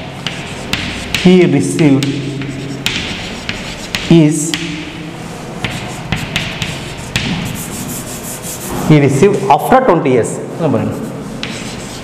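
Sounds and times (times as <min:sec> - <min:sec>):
chalk writing on a chalkboard: 0:00.0 - 0:08.8, 0:10.7 - 0:12.0.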